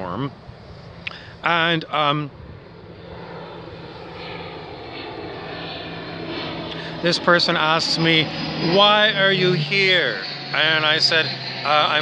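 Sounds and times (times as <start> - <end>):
aircraft engine drone: 0.0 - 12.0.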